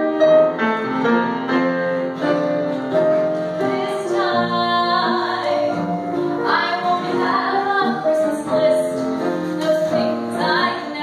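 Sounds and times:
piano accompaniment: 0:00.0 - 0:11.0
women singing in harmony: 0:06.4 - 0:08.9.

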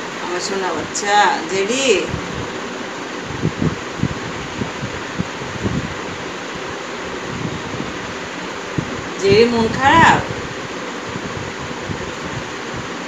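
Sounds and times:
room fan noise: 0:00.0 - 0:13.0.

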